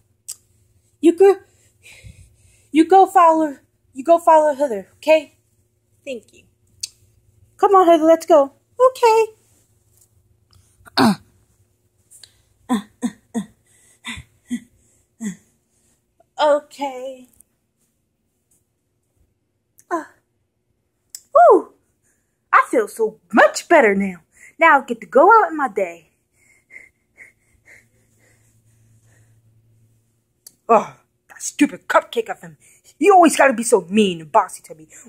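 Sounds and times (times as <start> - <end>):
soft puffs of breath: 0.6 - 2.8, 26.2 - 30.2.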